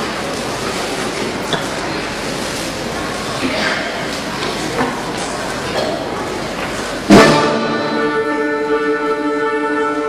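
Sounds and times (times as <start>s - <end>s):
wind band sustained chord: 7.1s - 10.0s.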